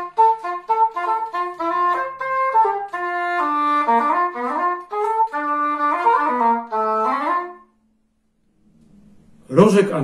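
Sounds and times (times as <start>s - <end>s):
cor anglais slow melody: 0.0s - 9.5s.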